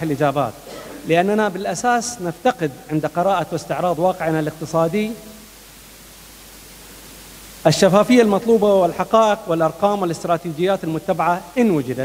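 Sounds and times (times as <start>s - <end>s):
man speaking: 0.0s - 5.3s, 7.6s - 12.0s
microphone hiss: 0.0s - 12.0s.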